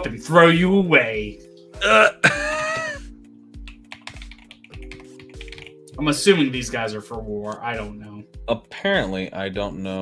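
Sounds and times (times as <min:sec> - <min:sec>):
background music with beat: 0:00.0 - 0:09.8
person laughing: 0:01.8 - 0:03.1
keyboard typing: 0:03.6 - 0:05.9.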